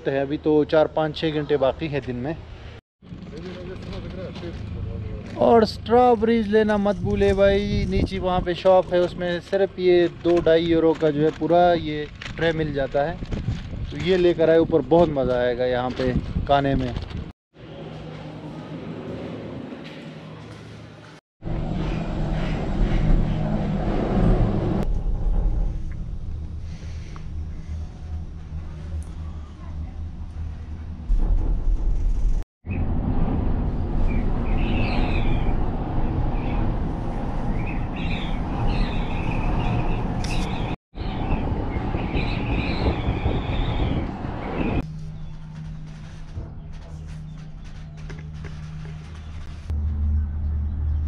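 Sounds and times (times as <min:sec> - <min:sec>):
cable car cabin rumble: 0:21.5 - 0:51.0.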